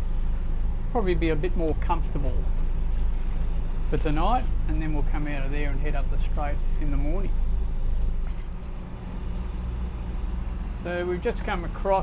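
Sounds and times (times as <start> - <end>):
boat engine droning: 0.0 - 12.0
wind: 0.0 - 12.0.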